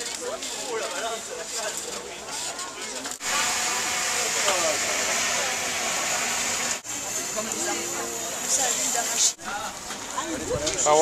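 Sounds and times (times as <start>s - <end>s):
faint murmuring voices: 0.0s - 6.2s.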